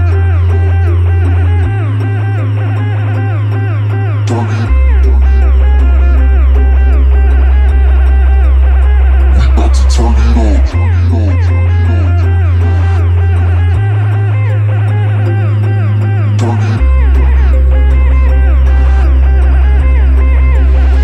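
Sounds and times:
loud sub-bass notes: 0.0s - 21.0s.

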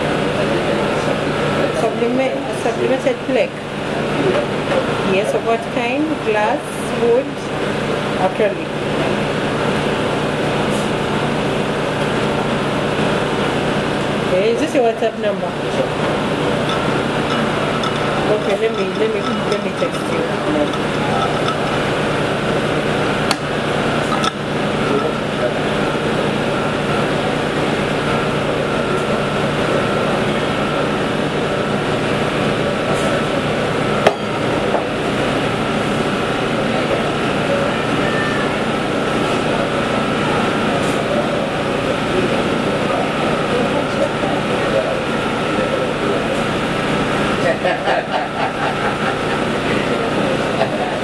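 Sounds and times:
mechanical hum of machinery: 0.0s - 51.0s
room noise: 0.0s - 51.0s.

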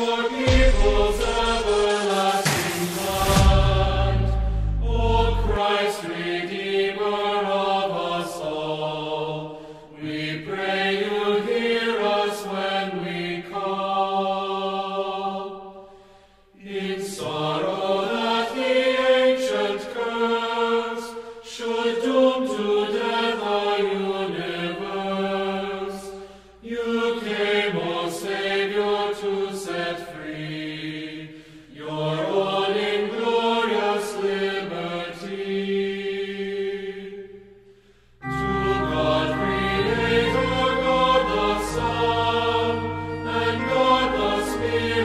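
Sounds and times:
voices singing chant: 0.0s - 37.6s, 38.2s - 45.0s.

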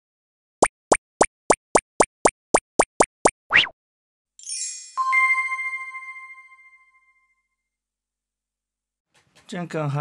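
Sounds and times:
cartoon plop sound effects: 0.6s - 3.8s.

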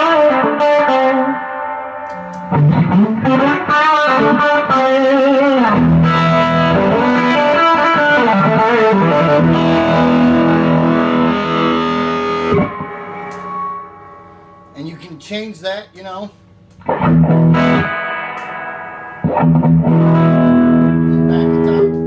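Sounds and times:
electric guitar with echo: 0.0s - 15.2s, 16.6s - 22.0s.

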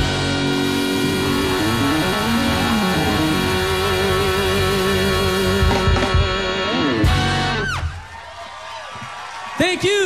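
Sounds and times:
sliding melody line: 0.0s - 7.6s
live soul band playing: 0.0s - 8.0s.

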